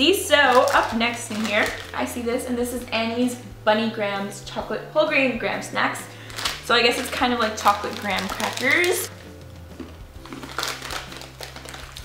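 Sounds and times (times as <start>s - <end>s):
crunchy snack chewing: 8.0s - 12.0s.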